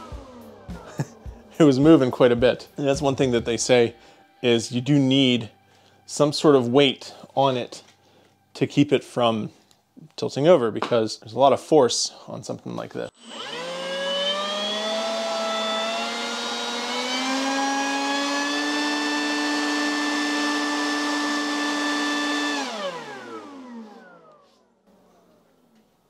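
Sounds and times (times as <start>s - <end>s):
leaf blower motor whine: 0.0s - 4.3s, 13.1s - 25.8s.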